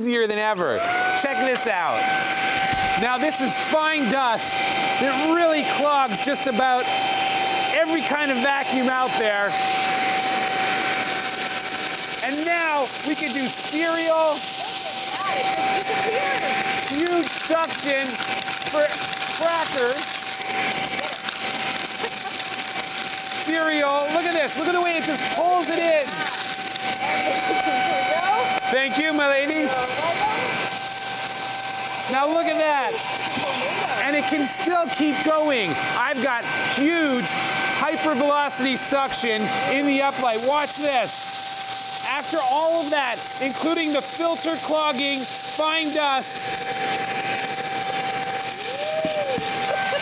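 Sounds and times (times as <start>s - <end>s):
vacuum cleaner high whine: 0.0s - 50.0s
crackers being sucked up: 8.1s - 27.5s, 40.6s - 50.0s.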